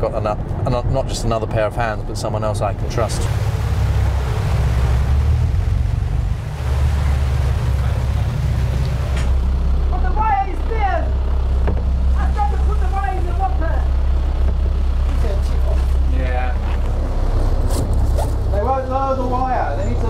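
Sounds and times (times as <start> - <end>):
boat engine rumble: 0.0 - 20.0.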